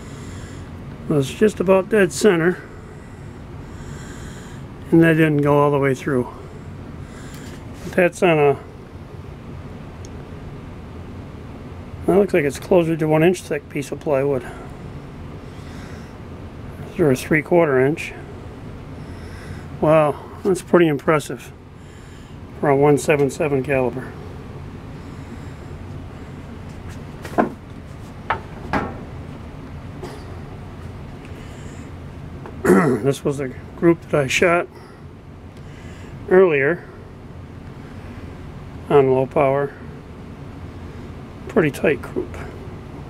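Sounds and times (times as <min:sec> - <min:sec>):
low background rumble: 0:00.0 - 0:43.0
steady low background noise: 0:00.0 - 0:43.0.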